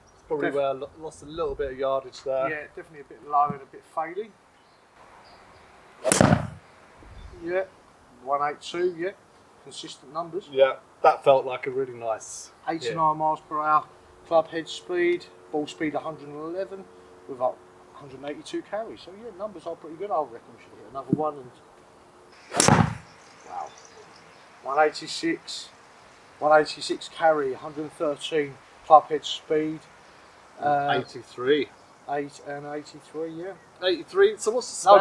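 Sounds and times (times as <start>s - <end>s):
ball hitting practice net: 6.0s - 6.6s, 22.5s - 23.1s
golf club striking ball: 6.0s - 6.6s, 22.4s - 23.2s.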